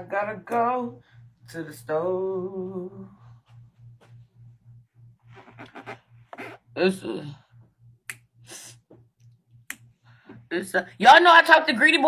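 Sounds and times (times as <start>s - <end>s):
pulsing low hum: 0.0s - 11.1s.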